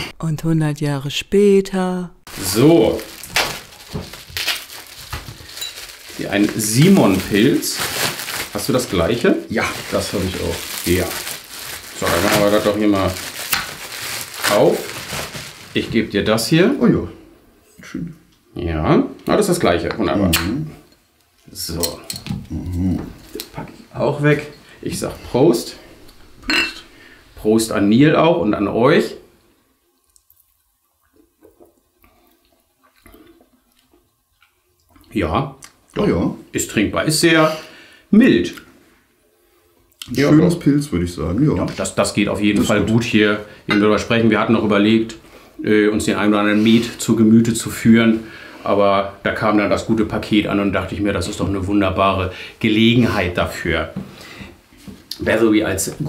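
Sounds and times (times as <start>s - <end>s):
plastic wrapping crinkling: 2.3s - 16.6s.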